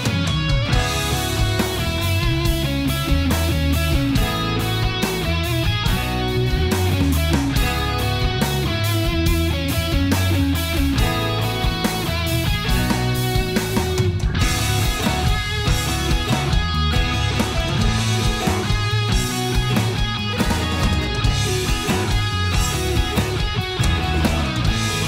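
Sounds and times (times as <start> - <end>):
instrumental rock band playing: 0.0 - 25.0.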